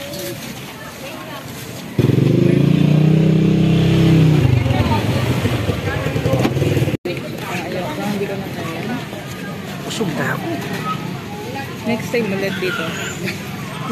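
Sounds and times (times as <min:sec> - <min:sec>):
street noise: 0:00.0 - 0:13.9
vehicle engine moving off: 0:02.0 - 0:07.0
people talking: 0:04.3 - 0:13.9.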